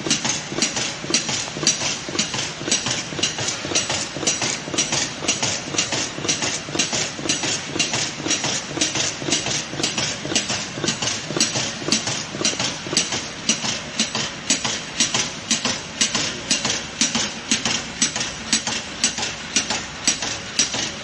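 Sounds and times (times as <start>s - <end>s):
rhythmic clatter of sharp clicks: 0.0s - 21.0s.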